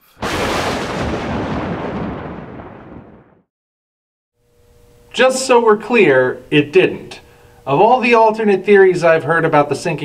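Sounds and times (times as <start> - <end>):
boom-like crash: 0.0 - 3.5.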